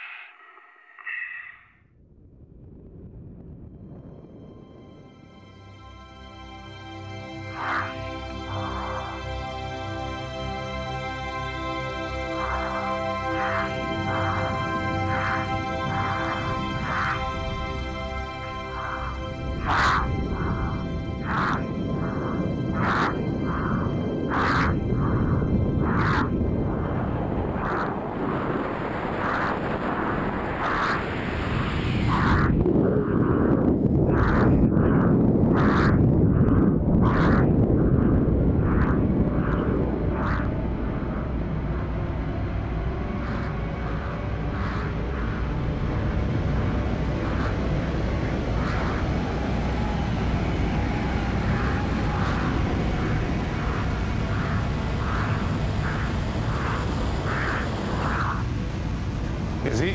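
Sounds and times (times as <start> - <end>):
rushing air noise: 0.0 - 4.8, 5.6 - 59.9
regular pulsing: 6.1 - 59.9.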